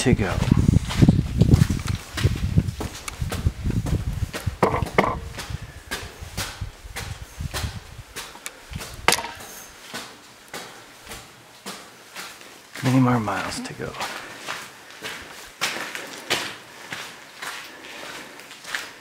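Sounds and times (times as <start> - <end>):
footsteps on metal staircase: 0.3 - 13.0.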